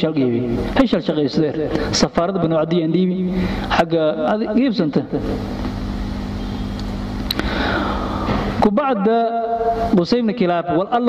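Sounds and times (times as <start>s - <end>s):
motor humming: 5.2s - 8.6s.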